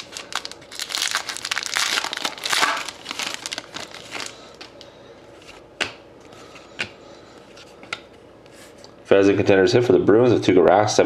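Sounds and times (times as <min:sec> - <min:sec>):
foil wrapper crinkling: 0:00.0 - 0:04.9.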